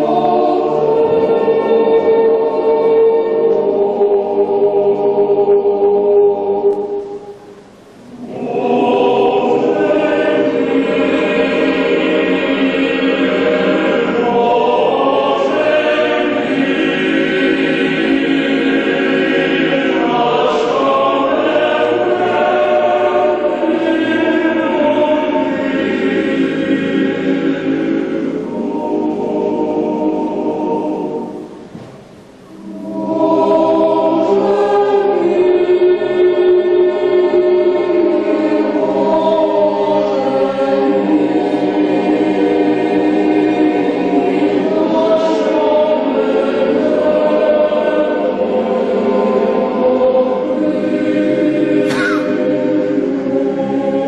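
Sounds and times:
boys' choir singing: 0:00.0 - 0:54.0.

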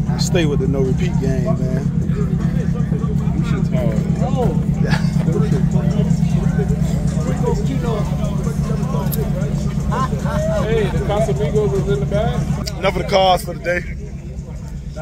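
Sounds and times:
car engine idling: 0:00.0 - 0:15.0
men's voices: 0:00.0 - 0:15.0.

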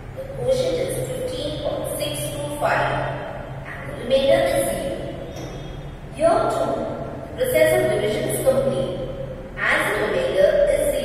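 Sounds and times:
steady low hum: 0:00.0 - 0:11.0
woman speaking: 0:00.1 - 0:11.0.

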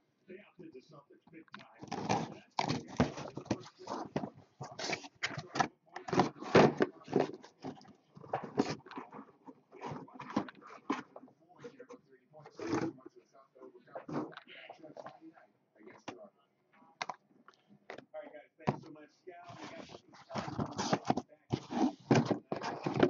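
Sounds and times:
cardboard scrapes knocks and rustles: 0:01.8 - 0:11.1, 0:19.5 - 0:23.0.

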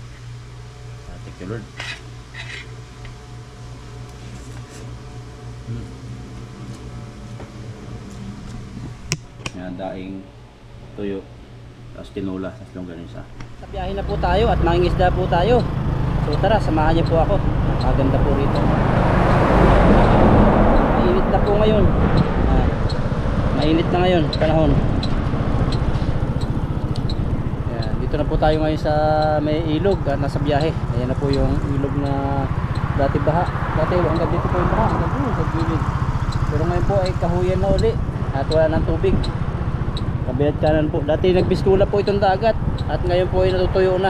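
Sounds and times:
electric fan humming: 0:00.0 - 0:44.0
motorcycle engine running: 0:13.6 - 0:44.0
wind rumble on microphone: 0:17.4 - 0:28.8, 0:32.4 - 0:44.0.

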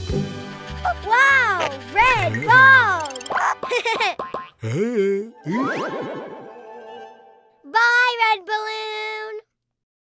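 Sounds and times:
children's music: 0:00.0 - 0:04.1, 0:04.7 - 0:09.3
wobbling cartoon sound effects: 0:02.1 - 0:06.7
voice-like sound rising and falling: 0:04.8 - 0:06.5.

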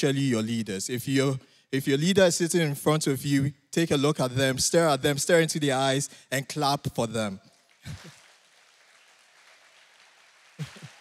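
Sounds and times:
congregation applauding: 0:07.5 - 0:11.0.

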